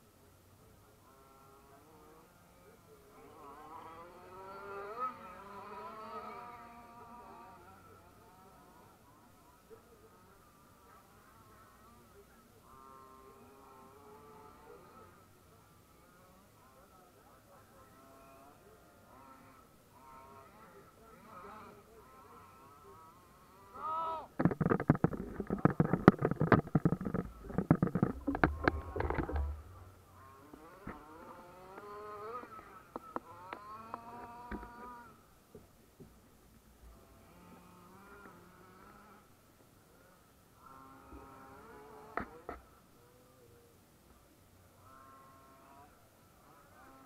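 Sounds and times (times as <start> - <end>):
radio-controlled car motors whining: 18.0 - 35.2.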